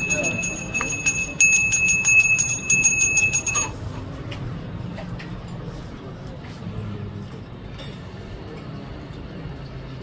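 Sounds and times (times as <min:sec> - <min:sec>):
hand bell ringing rapidly: 0:00.0 - 0:03.8.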